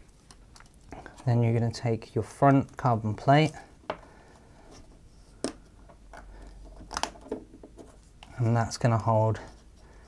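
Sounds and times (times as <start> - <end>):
soft handling noise: 0.0 - 10.0.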